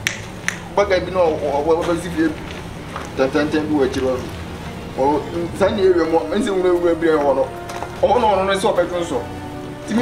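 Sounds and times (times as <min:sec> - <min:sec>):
finger snaps: 0:00.0 - 0:00.7
man talking: 0:00.7 - 0:10.0.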